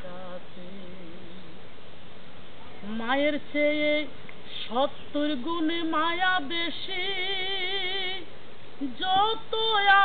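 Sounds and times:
woman singing: 0.0s - 1.6s, 2.8s - 10.0s
steady background hiss: 0.0s - 10.0s.

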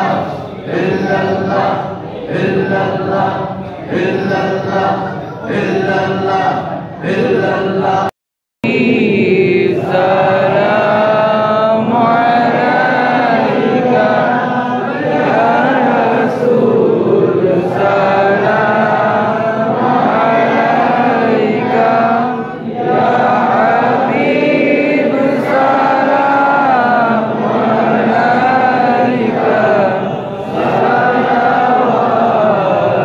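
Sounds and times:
man chanting recitation: 0.0s - 33.0s.

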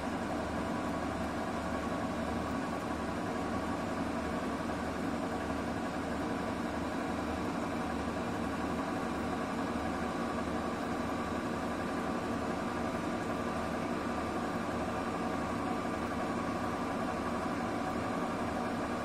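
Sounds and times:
washing machine spinning: 0.0s - 19.0s.

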